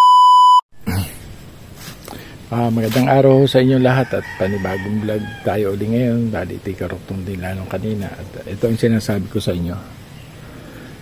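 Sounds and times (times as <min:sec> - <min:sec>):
test-tone beep: 0:00.0 - 0:00.6
faint background noise: 0:00.8 - 0:11.0.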